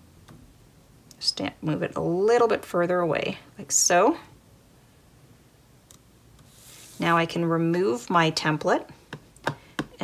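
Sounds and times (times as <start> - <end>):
plastic sheet sliding on card: 6.4 - 7.2.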